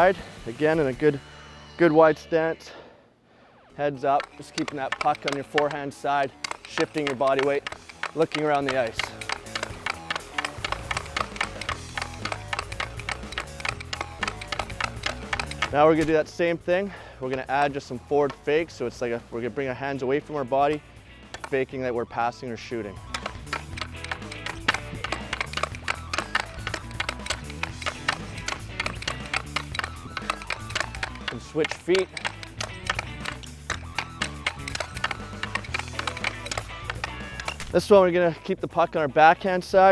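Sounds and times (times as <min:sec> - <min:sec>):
background music: 0:00.0 - 0:39.9
hockey stick tapping puck on concrete: 0:04.0 - 0:16.2, 0:17.3 - 0:18.8, 0:21.3 - 0:21.7, 0:23.0 - 0:38.0.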